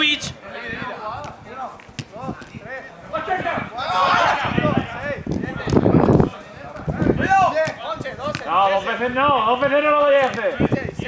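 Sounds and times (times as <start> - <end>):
running footsteps: 1.1 - 10.8
ball being kicked: 1.2 - 2.6, 5.3 - 8.6
men shouting: 3.2 - 5.2.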